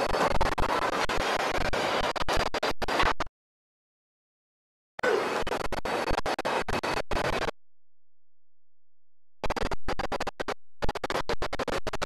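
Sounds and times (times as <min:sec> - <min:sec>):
glitching audio crackling: 0:05.5 - 0:07.6, 0:08.2 - 0:12.0.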